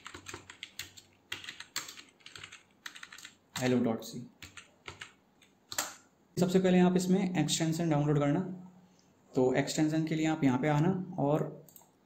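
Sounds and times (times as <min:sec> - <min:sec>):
typing on computer keyboard: 0:00.0 - 0:03.7, 0:04.4 - 0:06.0.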